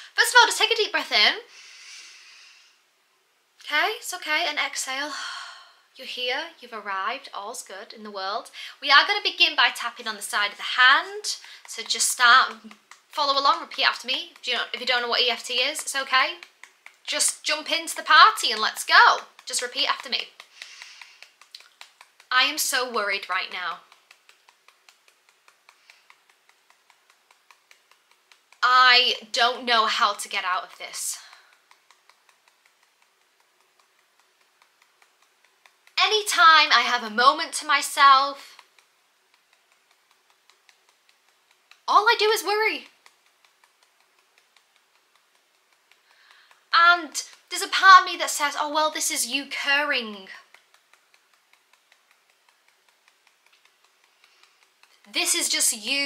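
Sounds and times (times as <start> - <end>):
fingertips tapping on hand: 9.6 - 56.0.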